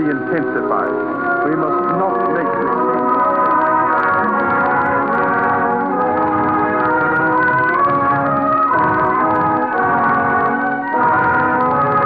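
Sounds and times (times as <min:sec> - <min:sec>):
orchestral music with held chords: 0:00.0 - 0:12.0.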